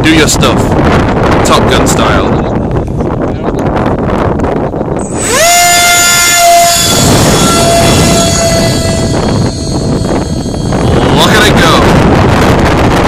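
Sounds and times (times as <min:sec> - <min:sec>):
wind buffeting microphone: 0:00.0 - 0:13.0
electric ducted fan whine: 0:03.9 - 0:13.0.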